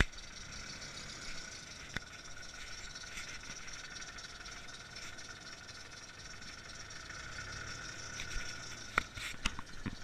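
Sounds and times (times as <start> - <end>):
car engine running at low revs: 0.0 - 10.0.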